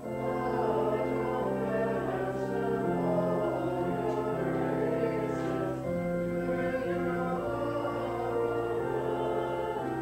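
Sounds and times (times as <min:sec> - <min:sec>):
many voices singing a hymn: 0:00.0 - 0:10.0
organ chords: 0:00.0 - 0:10.0.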